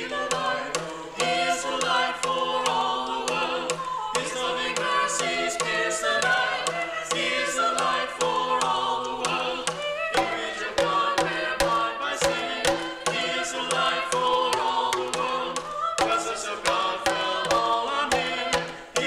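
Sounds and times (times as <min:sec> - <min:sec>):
group singing a cappella: 0:00.0 - 0:19.0
sharp percussive strikes: 0:00.0 - 0:19.0.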